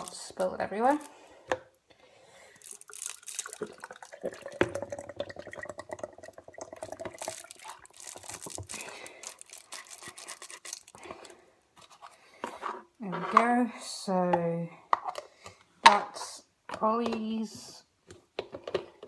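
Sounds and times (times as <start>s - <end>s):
milk pouring into plastic cup: 2.6s - 9.5s.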